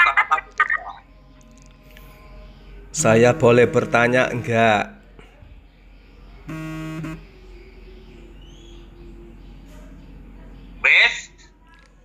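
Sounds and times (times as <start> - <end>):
faint low hum: 0.0 - 12.0
flat buzzy tone: 6.5 - 7.2.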